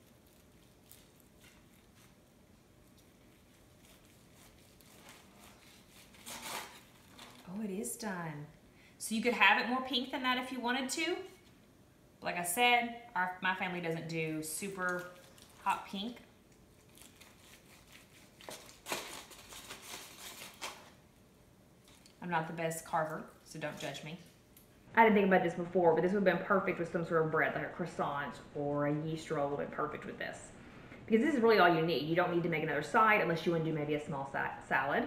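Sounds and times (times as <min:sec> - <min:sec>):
aluminum foil crinkling: 0:00.0 - 0:07.7, 0:14.6 - 0:21.1, 0:21.8 - 0:22.2.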